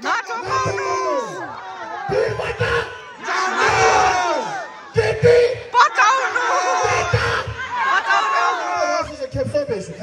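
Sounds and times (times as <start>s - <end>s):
crowd yelling and cheering: 0.0s - 10.0s
man shouting into microphone: 0.0s - 10.0s.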